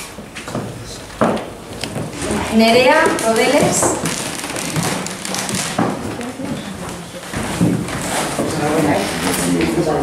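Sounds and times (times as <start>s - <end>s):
crackly room noise: 0.0s - 10.0s.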